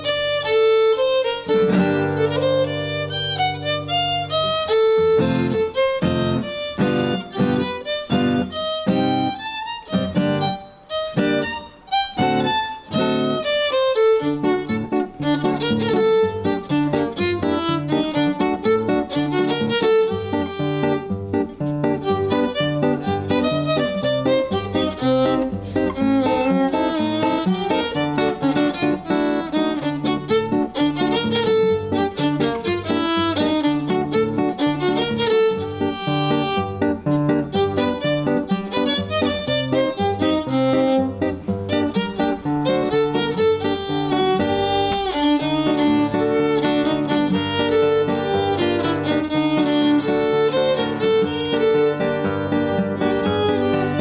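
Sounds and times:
plucked classical guitar: 0:00.0 - 0:54.0
violin melody: 0:00.0 - 0:54.0.

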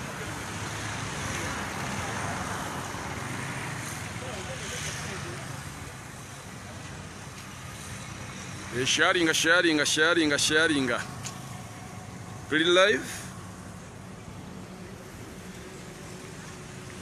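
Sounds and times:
road traffic noise: 0:00.0 - 0:17.0.

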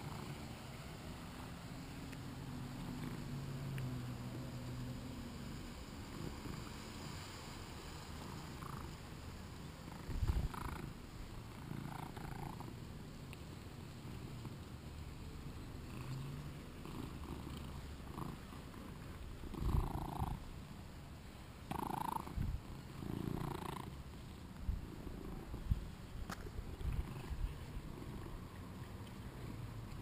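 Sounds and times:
cat purring: 0:00.0 - 0:00.7, 0:01.4 - 0:04.5, 0:05.4 - 0:07.3, 0:08.2 - 0:12.9, 0:13.8 - 0:20.8, 0:21.6 - 0:30.0.

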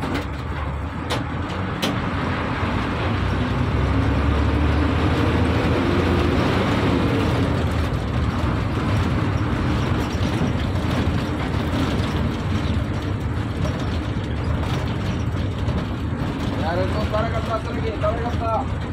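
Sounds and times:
bus engine and road noise: 0:00.0 - 0:18.9.

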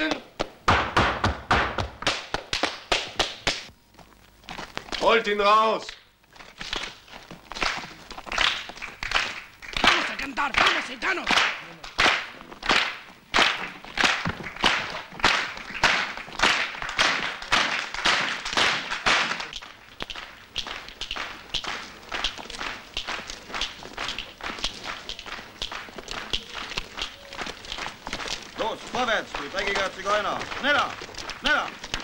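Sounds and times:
rhythmic handclapping: 0:00.0 - 0:03.7, 0:05.8 - 0:32.0.

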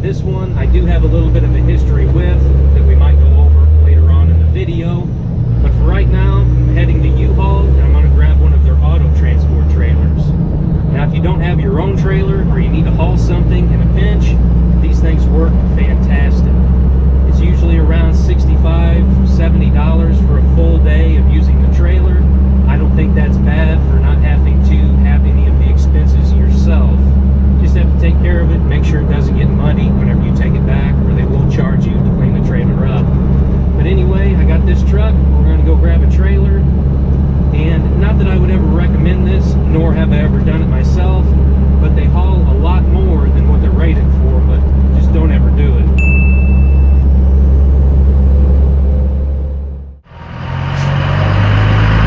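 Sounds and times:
man talking: 0:00.0 - 0:16.6, 0:17.2 - 0:33.1, 0:33.8 - 0:36.7, 0:37.5 - 0:46.0
pickup truck engine drone: 0:00.0 - 0:52.0.

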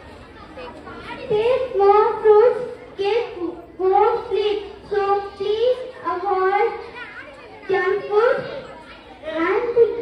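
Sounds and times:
girl speaking into a microphone: 0:00.0 - 0:10.0.

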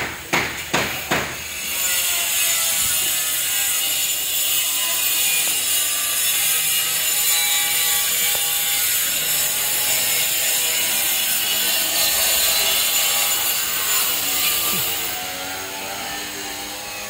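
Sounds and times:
rasping tool noise: 0:00.3 - 0:17.0.

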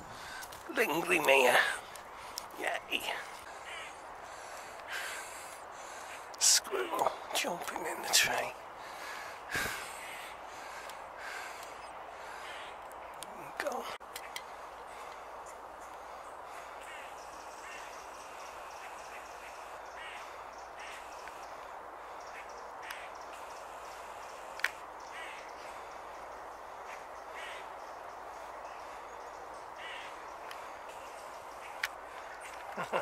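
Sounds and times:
steady outdoor rush: 0:00.0 - 0:33.0.

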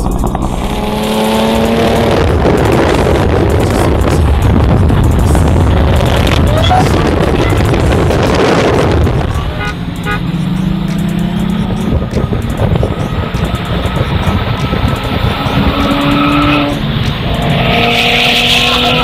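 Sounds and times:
car engine accelerating hard: 0:00.0 - 0:19.0.

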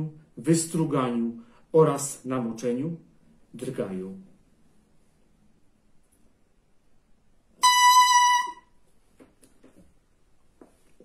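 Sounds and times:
double reed reedy tone: 0:07.6 - 0:08.8.

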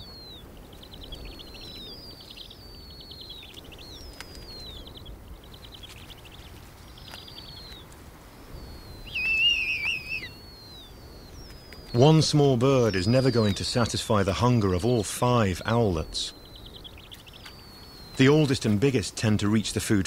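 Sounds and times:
owl chicks begging calls: 0:00.0 - 0:20.0
owl chicks chittering: 0:00.0 - 0:20.0.

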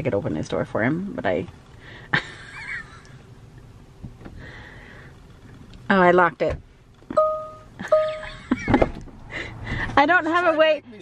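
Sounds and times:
electronic chime beeps: 0:07.2 - 0:08.4.

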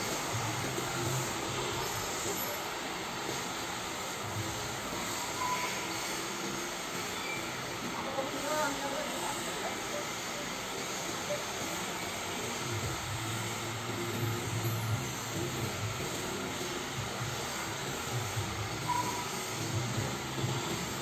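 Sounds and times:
mechanical hum and hiss: 0:00.0 - 0:21.0.

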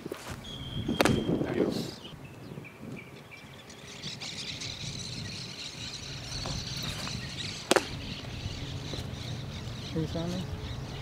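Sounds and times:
high-pitched hum: 0:00.4 - 0:11.0
baseball bat crack: 0:00.9 - 0:01.6, 0:06.4 - 0:08.0.

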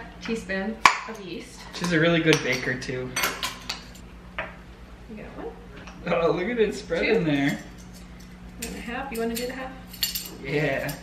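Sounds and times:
metal measuring spoons clinking: 0:07.3 - 0:11.0.

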